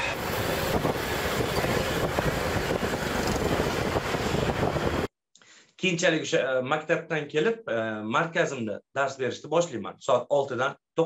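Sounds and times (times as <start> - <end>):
street traffic: 0.0 - 5.1
wind on microphone: 0.0 - 5.1.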